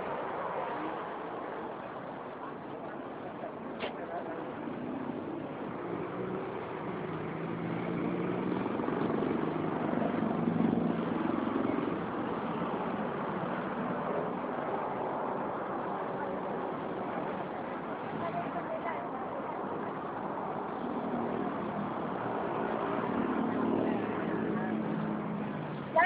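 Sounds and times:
road noise: 0.0 - 26.0
vehicle engine hum: 0.0 - 26.0.

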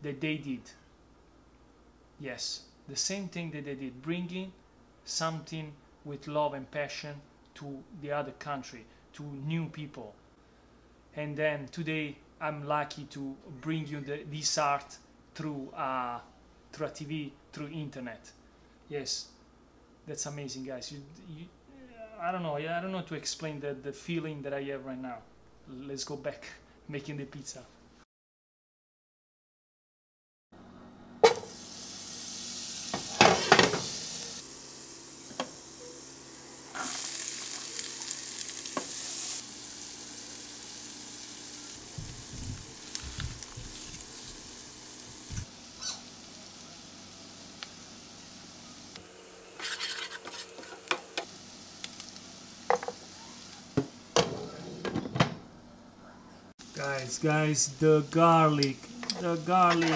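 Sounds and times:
onion sizzling in a frying pan: 31.2 - 54.4, 56.6 - 59.9.

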